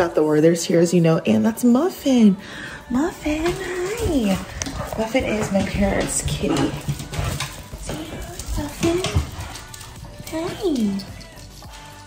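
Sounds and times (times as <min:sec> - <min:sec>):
soft footsteps: 0:03.0 - 0:12.0.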